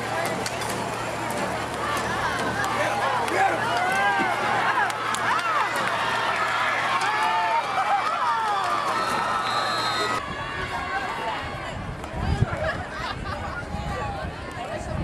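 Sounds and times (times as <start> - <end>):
spectators shouting and cheering: 0.0 - 15.0.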